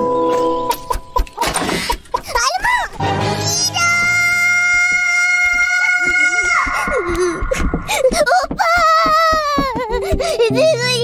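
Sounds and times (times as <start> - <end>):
cartoon child screaming: 3.6 - 6.9.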